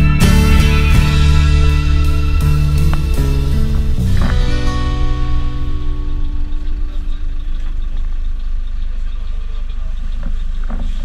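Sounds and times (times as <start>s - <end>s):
bus engine and tyres rumbling: 0.0s - 11.0s.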